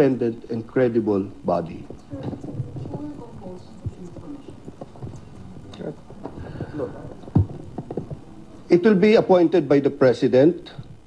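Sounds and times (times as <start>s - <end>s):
faint voices: 0.0s - 10.0s.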